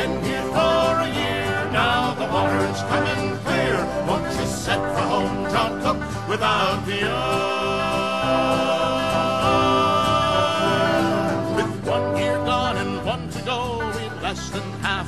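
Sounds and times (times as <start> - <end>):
guitars and banjo playing: 0.0 - 15.0.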